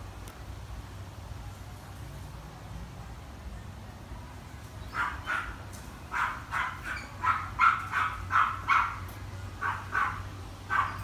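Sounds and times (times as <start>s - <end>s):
dog barking: 4.9s - 9.0s, 9.6s - 11.0s.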